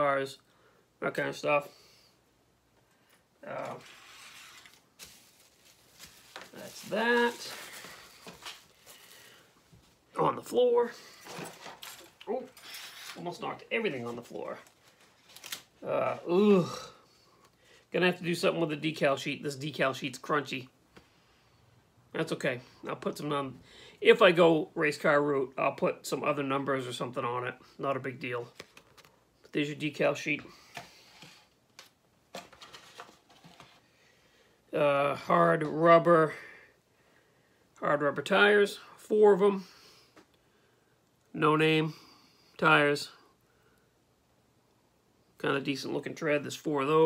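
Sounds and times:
faint room noise: 0:00.0 - 0:47.0
bag rustling: 0:03.6 - 0:09.4.

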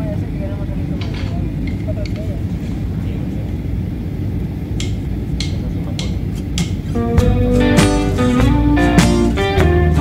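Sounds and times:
faint voices: 0:00.0 - 0:03.7
aircraft engine rumble: 0:00.0 - 0:10.0.

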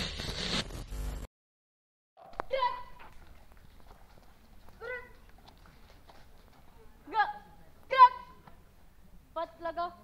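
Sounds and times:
woman shouting command: 0:02.4 - 0:03.0, 0:04.8 - 0:05.2, 0:07.0 - 0:08.4.

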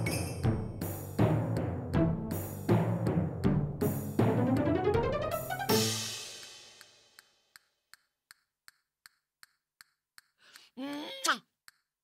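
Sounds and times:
steady dry ticking: 0:06.8 - 0:10.8.

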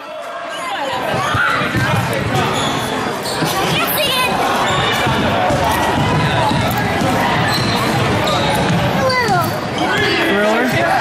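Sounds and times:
echoing crowd chatter: 0:00.0 - 0:11.0.

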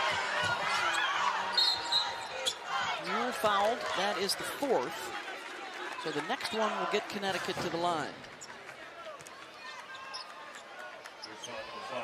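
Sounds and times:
crowd chatter and murmur: 0:00.0 - 0:12.0
knocks and squeaks from court: 0:00.4 - 0:03.4, 0:09.7 - 0:12.0.

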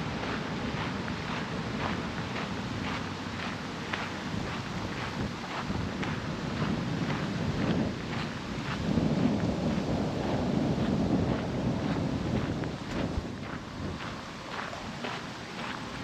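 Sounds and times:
wind buffeting microphone: 0:00.0 - 0:16.0
footsteps crunching on gravel: 0:10.7 - 0:16.0.

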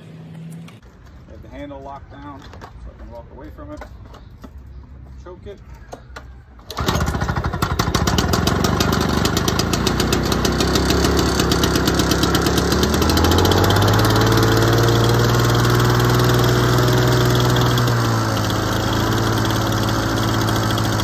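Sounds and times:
two-stroke mower engine starting: 0:06.6 - 0:21.0.

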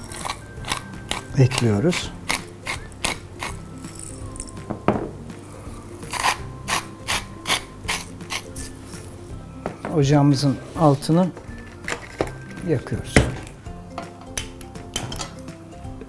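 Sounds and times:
pepper mill grinding clicks: 0:00.0 - 0:03.5
soft background music: 0:00.0 - 0:16.0.

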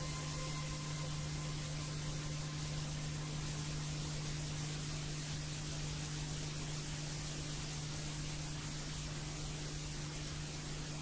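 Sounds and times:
low electrical hum: 0:00.0 - 0:11.0
tape hiss: 0:00.0 - 0:11.0.

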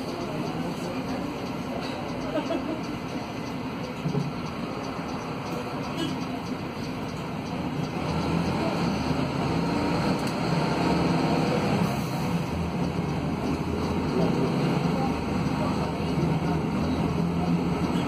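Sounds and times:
bus diesel engine idling: 0:00.0 - 0:18.0.

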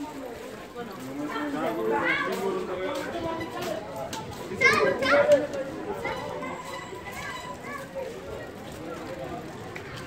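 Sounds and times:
children chattering: 0:00.0 - 0:10.0
children shouting in play: 0:04.5 - 0:08.6.

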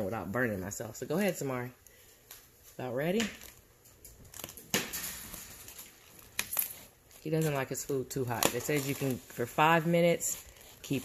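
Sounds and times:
plastic bag crinkling: 0:03.4 - 0:11.0.

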